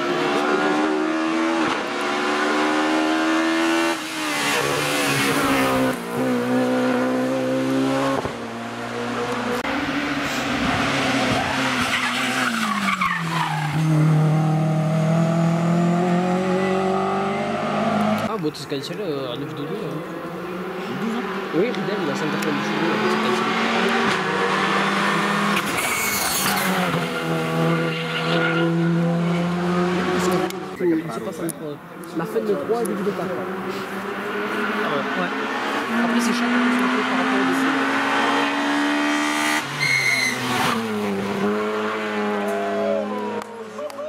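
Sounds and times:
distant rally car engine buzz: 0.0s - 18.3s, 19.4s - 31.1s, 32.4s - 43.5s
high-pitched squeal: 39.7s - 41.0s.

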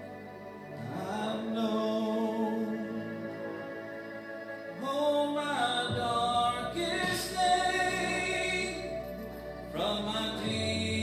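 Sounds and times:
man singing a worship song: 0.8s - 3.4s, 4.8s - 11.0s.

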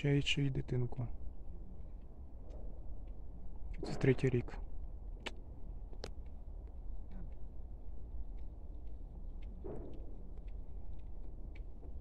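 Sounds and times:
steady low rumble: 0.0s - 12.0s
faint clicks: 8.1s - 12.0s.

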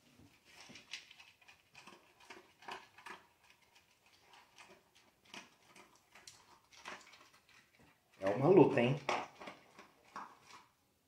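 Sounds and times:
dog crunching kibble in metal bowl: 0.3s - 10.8s.

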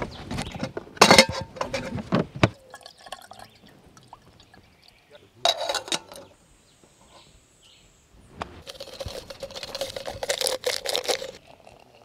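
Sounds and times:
kettle clinking: 0.6s - 6.4s
water pouring into metal cup: 2.6s - 4.9s, 8.6s - 12.0s.

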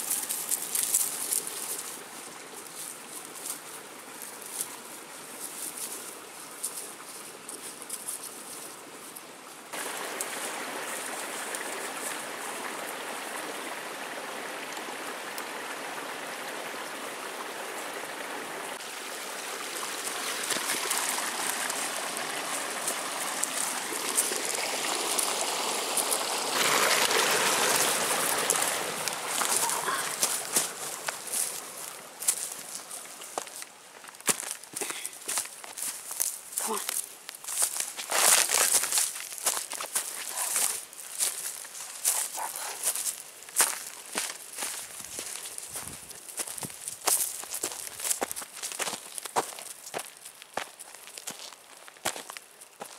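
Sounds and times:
footsteps through dry leaves: 0.0s - 8.7s, 19.8s - 52.9s
creek water rushing: 0.0s - 52.9s.

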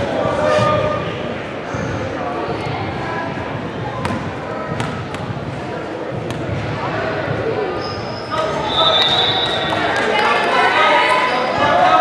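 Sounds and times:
echoing voices: 0.0s - 12.0s.

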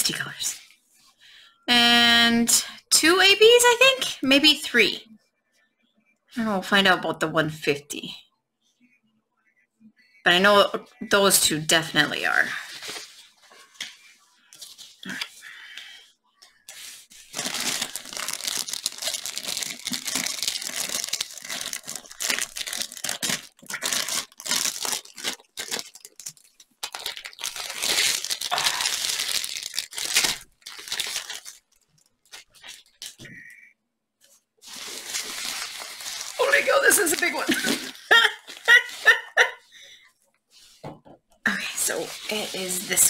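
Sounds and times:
plastic wrapping crinkling and tearing: 16.7s - 33.2s, 34.6s - 39.4s, 41.8s - 43.0s.

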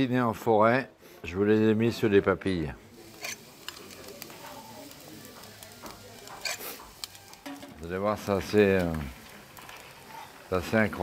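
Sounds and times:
faint sizzle: 1.0s - 11.0s
cream siphon hissing: 2.8s - 11.0s.

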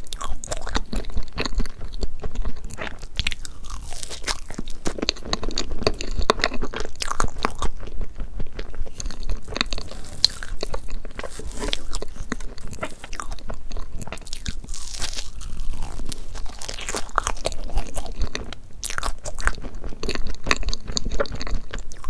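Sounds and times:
clicky chewing: 0.0s - 22.0s.

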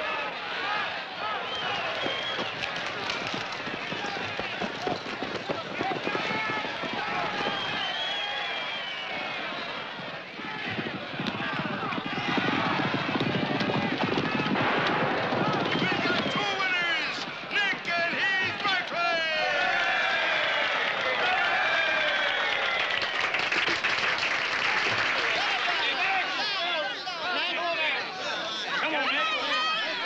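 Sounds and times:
crowd cheering and shouting: 0.0s - 23.2s, 24.6s - 30.0s
crowd clapping: 1.2s - 26.7s.

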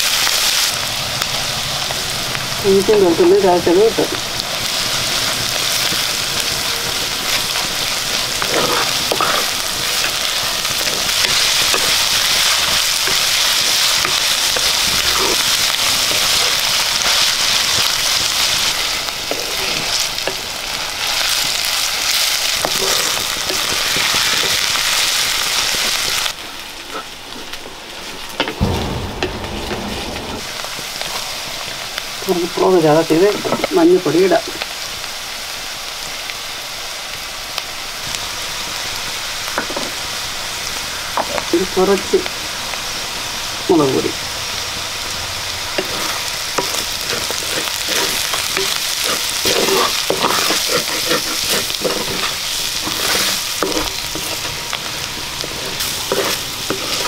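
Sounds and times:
onions sizzling in hot oil: 0.0s - 29.4s, 30.0s - 57.0s
wooden spatula scraping pot: 45.8s - 54.4s, 55.4s - 57.0s.

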